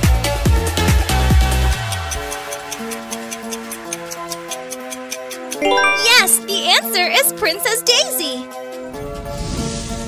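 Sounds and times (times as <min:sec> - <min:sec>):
rising chime jingle: 0:05.6 - 0:07.5
quiz background music: 0:05.6 - 0:08.5.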